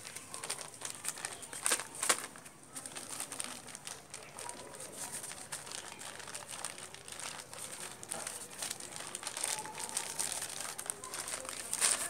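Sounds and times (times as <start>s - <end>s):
plastic pot crinkling: 0.0s - 12.0s.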